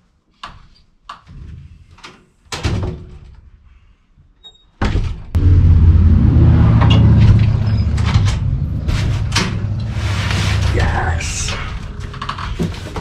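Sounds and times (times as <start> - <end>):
low engine rumble: 5.4 - 13.0
knocks and thuds: 6.6 - 9.9.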